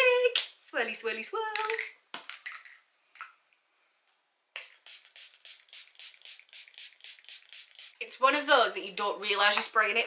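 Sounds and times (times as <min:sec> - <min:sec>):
spray bottle misting hisses: 0:04.6 - 0:08.0.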